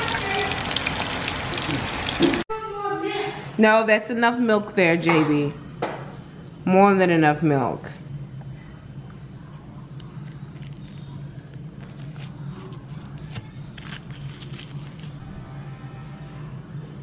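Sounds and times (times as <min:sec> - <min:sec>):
spoon crackling through crust: 0:09.6 - 0:15.2.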